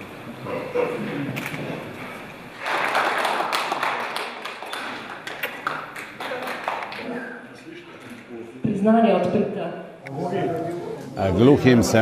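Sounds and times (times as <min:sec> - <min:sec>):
audience applauding: 0:02.6 - 0:07.3.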